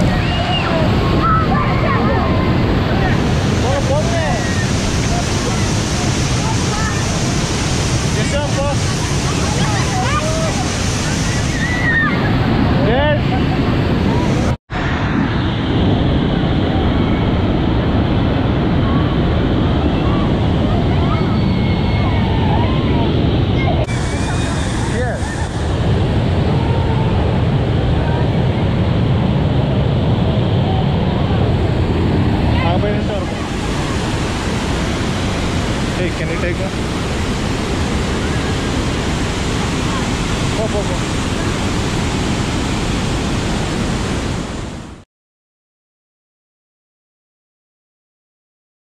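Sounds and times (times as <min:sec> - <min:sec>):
waterfall rushing: 0:00.0 - 0:45.0
wind buffeting microphone: 0:00.0 - 0:45.0.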